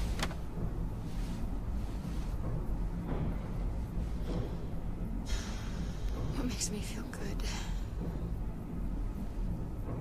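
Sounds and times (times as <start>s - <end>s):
car engine rumbling: 0.0s - 5.6s.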